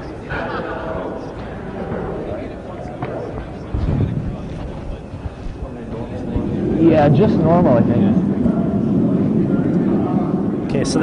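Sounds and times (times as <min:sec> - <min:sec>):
indistinct background voices: 0:00.0 - 0:11.0
room noise: 0:00.0 - 0:11.0
low rumble: 0:00.2 - 0:11.0.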